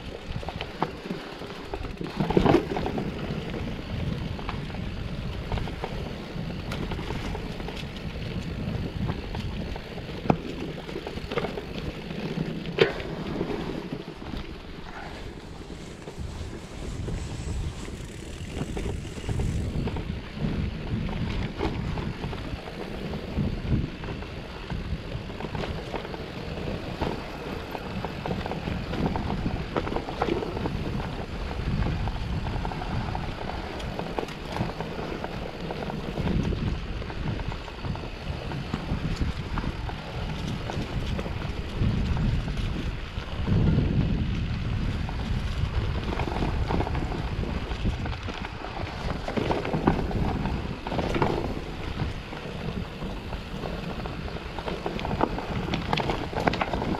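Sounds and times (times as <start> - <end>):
bike rattling and knocking: 0.0 - 56.9
bike tyres rumbling over dirt: 0.0 - 56.9
wind buffeting microphone: 0.0 - 56.9.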